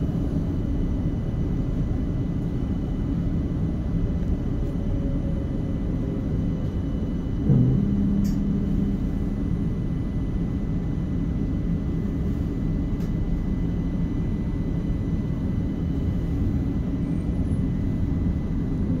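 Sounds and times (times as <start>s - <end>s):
tram interior rumble: 0.0s - 19.0s.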